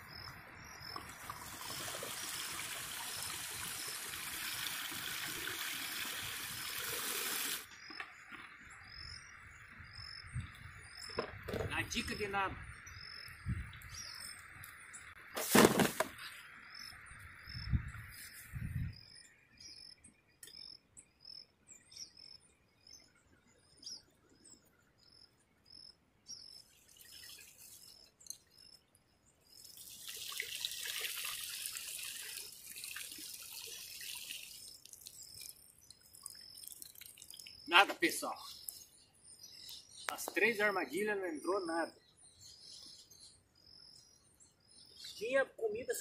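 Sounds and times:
water sloshing and pouring: 0.9s - 7.6s, 26.8s - 28.0s, 29.6s - 37.7s.

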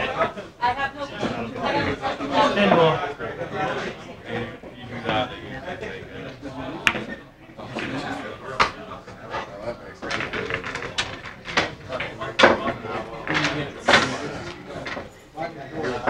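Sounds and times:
indistinct conversation: 0.0s - 16.0s
pool balls clicking: 6.2s - 15.4s.

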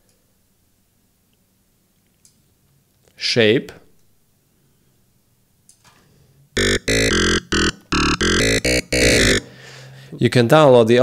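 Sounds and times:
bright synth notes: 6.6s - 9.5s.

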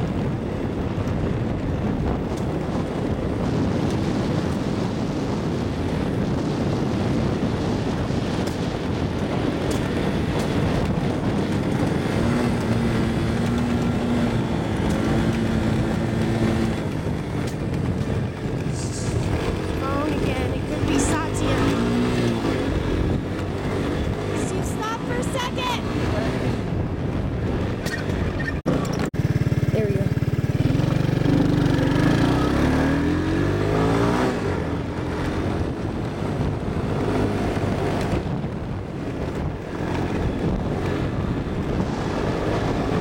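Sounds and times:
three-wheeler engine running: 0.0s - 43.0s.

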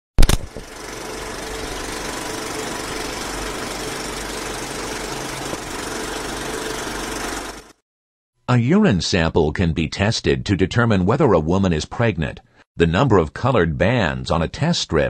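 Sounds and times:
sharp click: 0.2s - 0.7s
film projector running: 0.2s - 7.8s.

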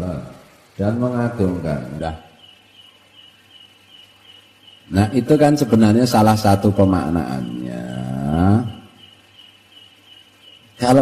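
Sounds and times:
insect chirping: 0.0s - 11.0s
man's voice: 4.9s - 8.8s.

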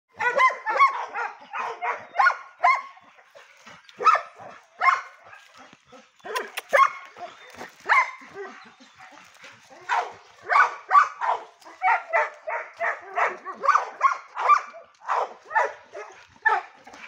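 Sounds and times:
dogs barking: 0.1s - 17.0s.

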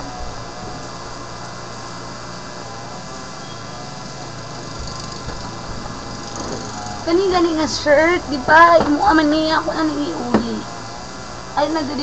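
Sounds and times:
room hum and hiss: 0.0s - 12.0s.

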